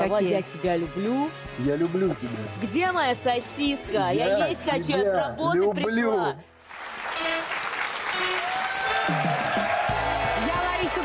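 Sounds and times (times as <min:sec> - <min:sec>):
music playing: 0:00.0 - 0:11.0
audience applauding: 0:06.6 - 0:11.0.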